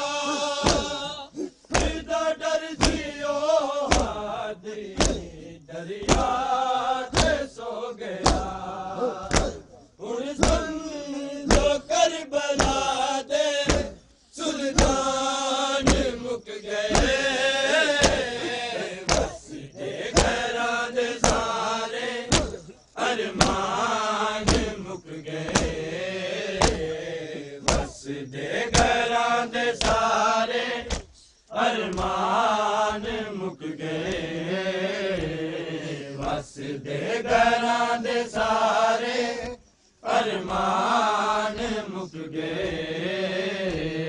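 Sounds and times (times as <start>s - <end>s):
men chanting in unison: 0.0s - 44.0s
rhythmic chest-beating slaps: 0.0s - 44.0s
hands striking chests: 0.6s - 1.0s, 1.7s - 2.0s, 3.9s - 4.2s, 5.0s - 5.3s, 7.1s - 7.4s, 8.2s - 8.6s, 9.2s - 9.7s, 15.8s - 16.1s, 16.9s - 17.2s, 17.9s - 19.4s, 22.3s - 22.7s, 26.6s - 26.9s, 27.7s - 28.0s.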